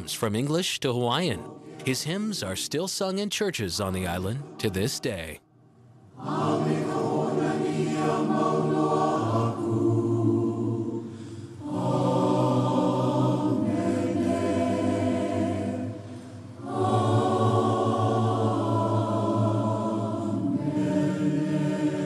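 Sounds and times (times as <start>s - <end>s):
choir singing a hymn: 0.9s - 2.8s, 3.6s - 5.2s, 6.1s - 22.0s.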